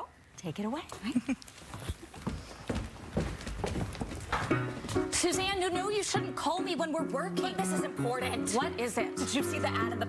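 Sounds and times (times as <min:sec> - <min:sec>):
footsteps on wooden floor: 0:01.5 - 0:06.2.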